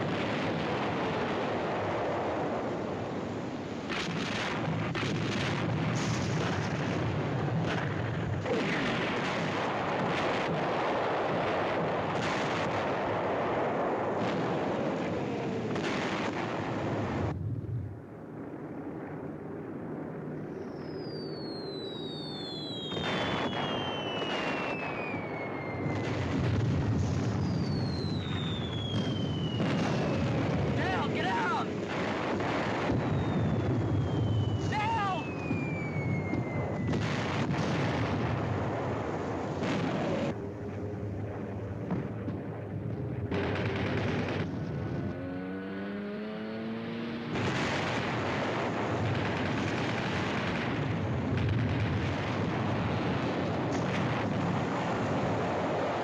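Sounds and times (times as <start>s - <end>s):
bomb explosions: 0.0s - 18.9s, 21.4s - 45.1s, 47.3s - 56.0s
whistles of falling bombs: 20.4s - 31.3s, 31.9s - 40.3s.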